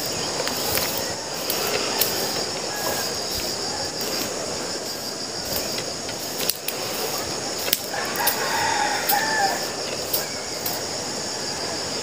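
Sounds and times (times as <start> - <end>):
insect chorus droning: 0.0 - 12.0.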